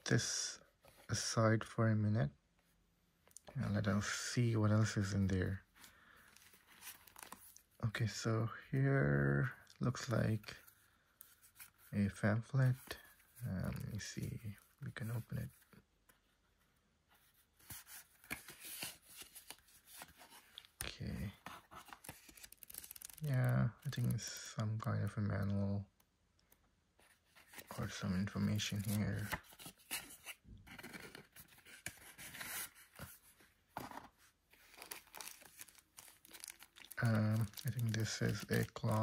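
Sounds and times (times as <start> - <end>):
paper rustling and crackling: 6.3 - 7.7, 17.6 - 23.2, 27.0 - 39.0.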